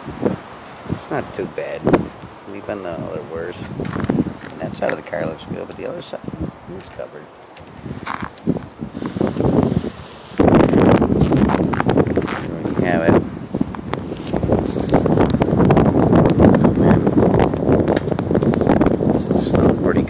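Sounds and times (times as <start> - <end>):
wind blowing across microphone: 0.0 - 20.0.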